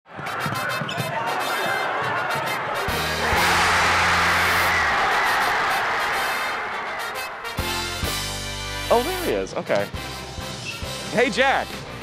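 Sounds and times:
crowd shouting: 0.3 - 8.3
crowd clapping: 2.9 - 8.1.

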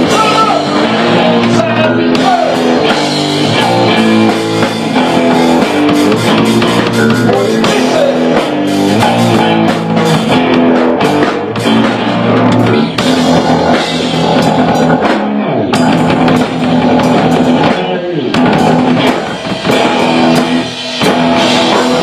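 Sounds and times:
drum kit: 0.0 - 22.0
electric guitar: 0.0 - 22.0.

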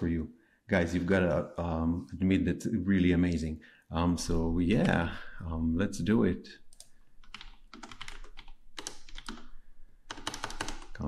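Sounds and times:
computer keyboard typing: 6.7 - 11.0.

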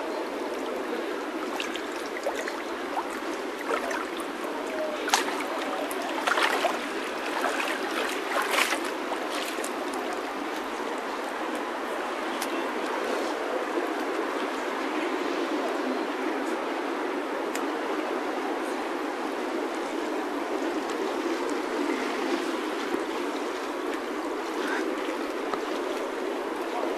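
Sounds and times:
river rushing: 0.2 - 13.5.

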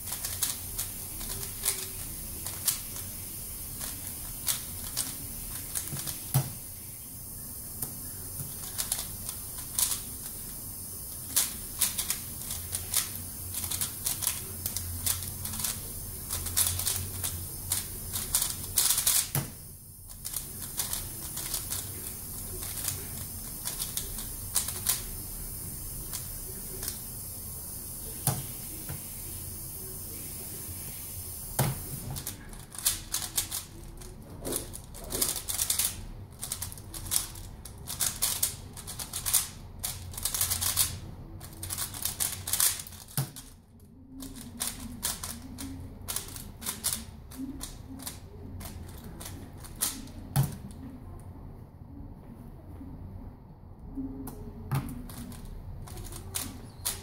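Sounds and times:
speed cube clicking: 0.0 - 6.6, 8.5 - 25.2, 31.8 - 43.6, 44.2 - 50.6, 54.9 - 57.0.

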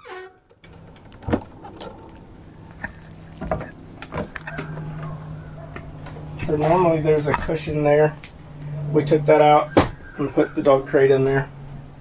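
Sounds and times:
footsteps on metal steps: 3.3 - 7.8, 9.7 - 10.1
sharp knocks: 9.7 - 10.1.

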